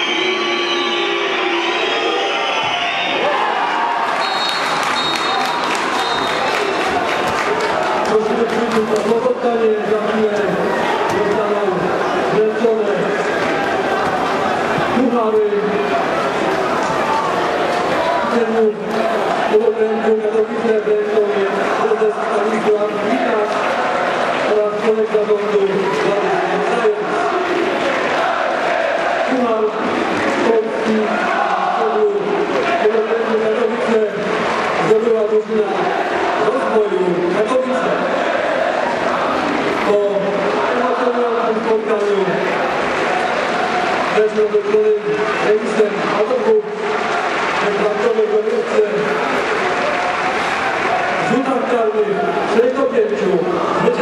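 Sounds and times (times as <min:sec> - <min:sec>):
crowd noise: 0:00.0 - 0:54.0
football supporters chanting: 0:25.8 - 0:33.2, 0:35.7 - 0:36.6, 0:37.8 - 0:39.8.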